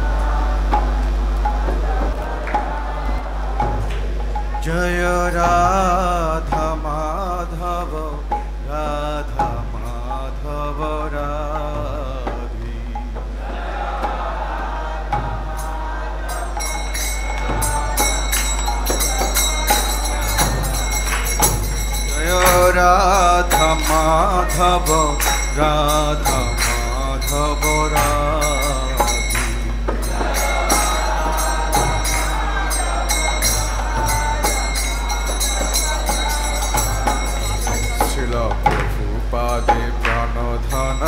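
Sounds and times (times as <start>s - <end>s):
instrumental accompaniment: 0.0s - 41.0s
percussion strikes: 0.0s - 41.0s
person chanting: 0.0s - 41.0s
steady drone: 0.0s - 41.0s
person singing: 4.5s - 41.0s.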